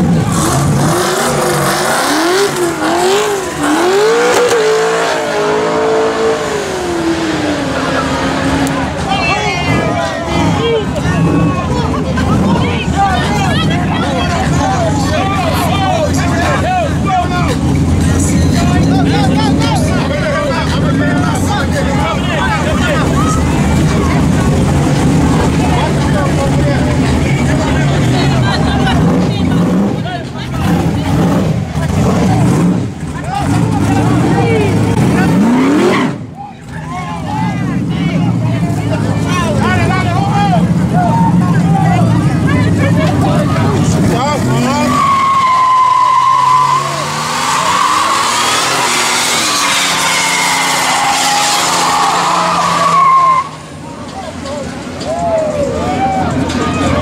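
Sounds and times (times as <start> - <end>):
car engine revving: 0.0 - 55.0
tyre squeal: 44.6 - 53.7.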